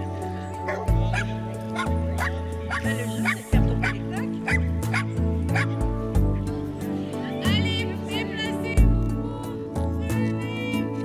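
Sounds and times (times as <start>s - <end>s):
music with bass notes: 0.0s - 11.0s
dogs barking and yipping: 0.5s - 5.8s.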